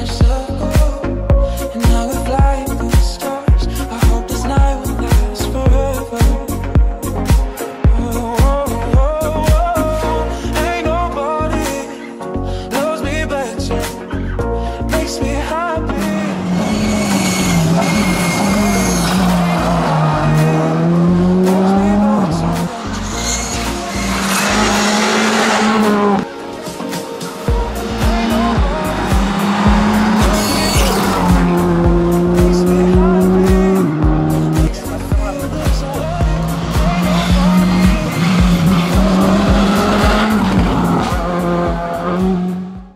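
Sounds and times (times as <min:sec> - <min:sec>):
music with a steady beat: 0:00.0 - 0:42.9
rally car engine revving: 0:15.9 - 0:42.9.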